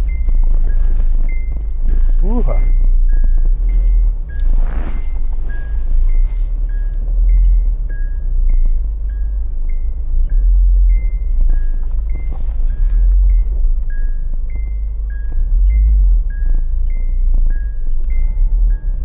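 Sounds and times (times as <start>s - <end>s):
car rumbling slowly: 0.0s - 19.0s
two-note electronic tone: 0.0s - 19.0s.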